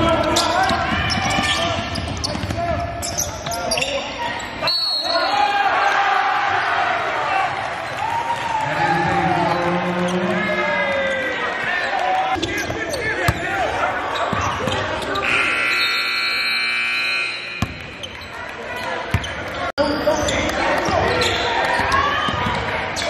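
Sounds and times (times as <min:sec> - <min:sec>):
indistinct voices in a hall: 0:00.0 - 0:16.4, 0:17.2 - 0:23.0
sneakers squeaking: 0:00.2 - 0:05.3, 0:11.6 - 0:23.0
scoreboard horn: 0:15.2 - 0:17.7.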